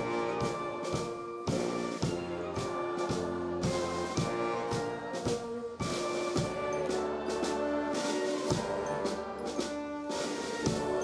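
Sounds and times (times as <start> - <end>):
brass chords: 0.0 - 11.0
steady drum beat: 0.0 - 11.0.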